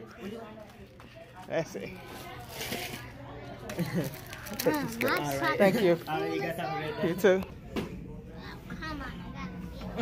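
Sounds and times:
indistinct voices and chatter: 0.0 - 10.0.

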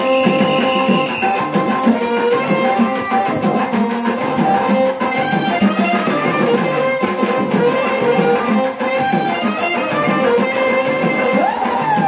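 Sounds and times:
percussion: 0.0 - 12.0.

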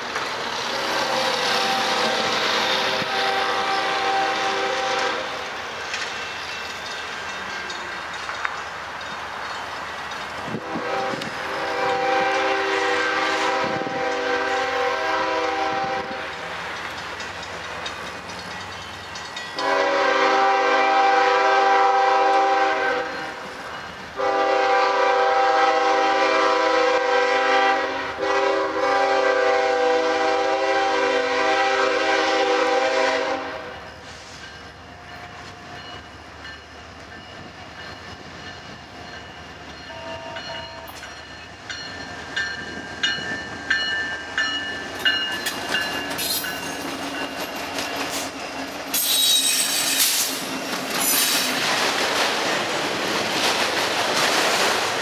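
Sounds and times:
train running noise: 0.0 - 55.0
locomotive air horn blasts: 0.8 - 5.4, 10.5 - 16.2, 19.6 - 23.3, 24.2 - 33.8.

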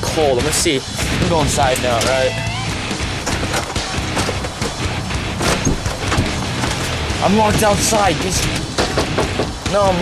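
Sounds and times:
hailstones clattering: 5.4 - 10.0.

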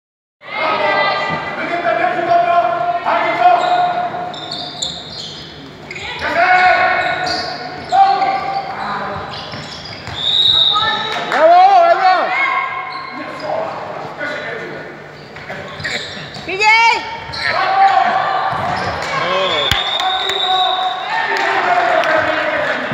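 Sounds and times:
people shouting in a sports hall: 0.4 - 5.1, 6.0 - 9.2, 10.1 - 14.7, 15.6 - 22.9.

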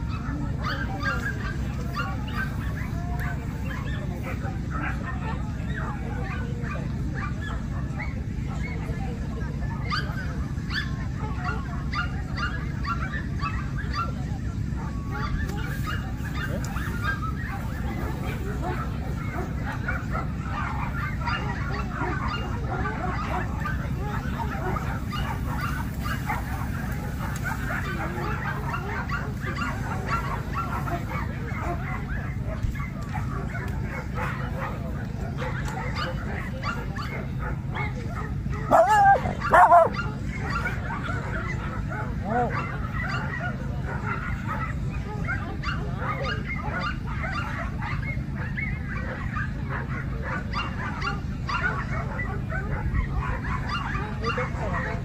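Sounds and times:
dog barking: 0.0 - 8.8, 9.8 - 14.2, 14.8 - 55.0
background chatter of people: 0.0 - 55.0.

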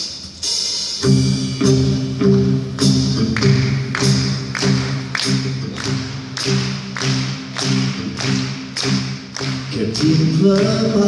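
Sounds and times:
pop band playing: 0.0 - 11.0
man singing: 9.6 - 11.0.

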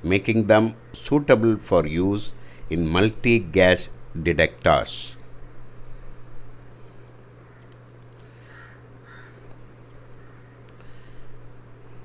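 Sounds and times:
steady low hum: 0.0 - 12.0
harsh bird calls: 8.4 - 9.5.

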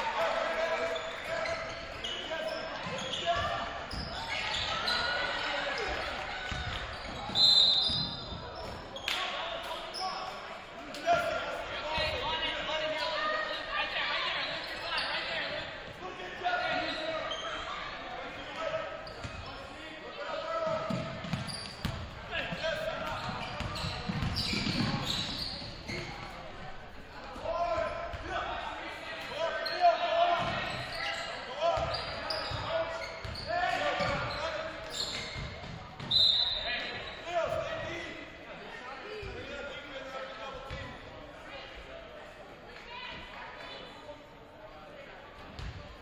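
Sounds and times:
shouts and chatter: 0.0 - 21.5, 22.1 - 44.0.

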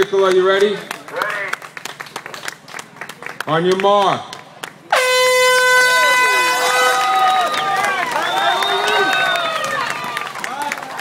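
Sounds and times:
starting horn blast: 4.9 - 7.4
crowd cheering and whooping: 6.0 - 11.0.

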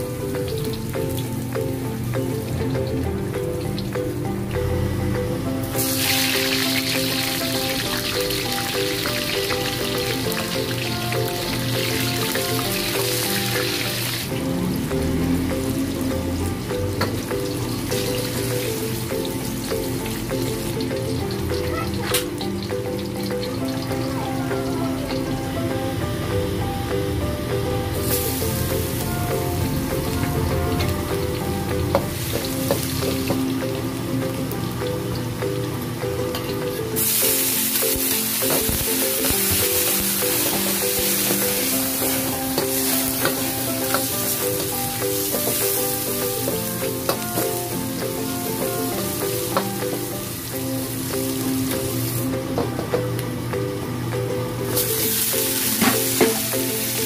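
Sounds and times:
onion and garlic sizzling in oil: 0.0 - 27.1, 27.8 - 53.2, 54.6 - 57.0
background music: 0.0 - 57.0.

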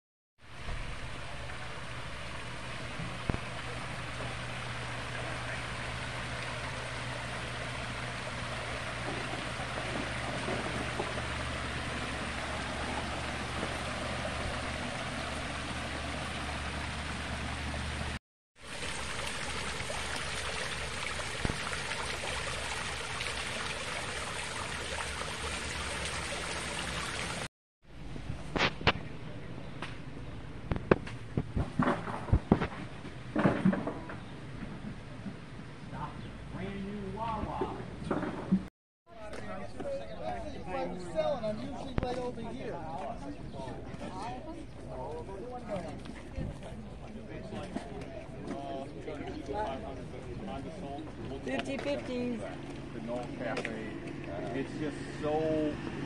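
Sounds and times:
water splashing over rocks: 0.7 - 27.5.

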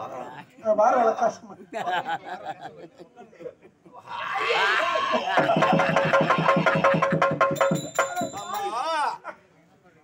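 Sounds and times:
fast drum strokes: 5.4 - 8.6
high ringing tone: 7.4 - 8.8.

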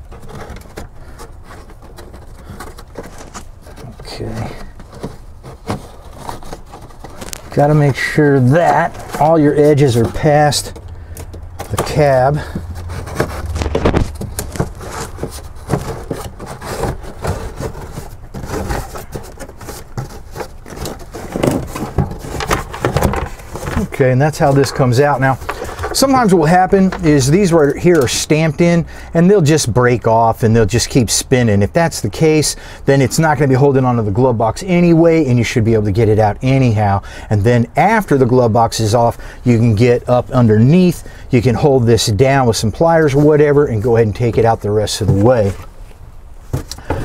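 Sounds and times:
light knocks and rustles: 0.0 - 28.1
plastic liner scraping on metal: 0.0 - 28.8.

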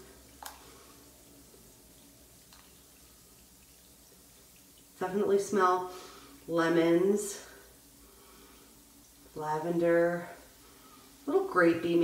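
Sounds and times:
bath bomb fizzing: 0.0 - 12.0.

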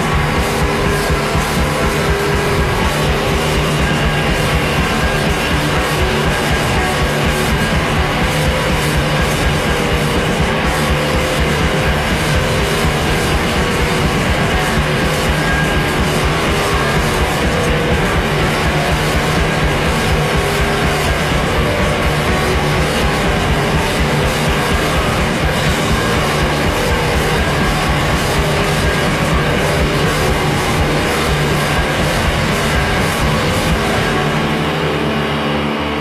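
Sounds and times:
post-punk rock band playing: 0.0 - 36.0.

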